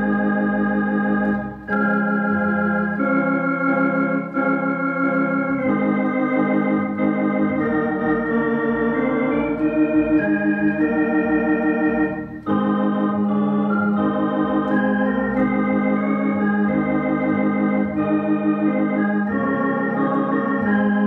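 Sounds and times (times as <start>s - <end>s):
electronic organ chords: 0.0s - 21.0s.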